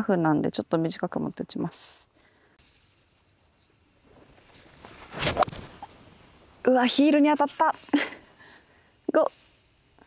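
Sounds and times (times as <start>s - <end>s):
golf club swing whoosh: 4.5s - 6.1s.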